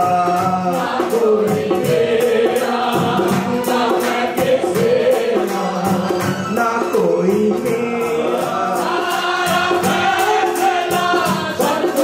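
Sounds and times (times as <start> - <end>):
man singing into a microphone: 0.0 - 2.0, 5.1 - 9.1.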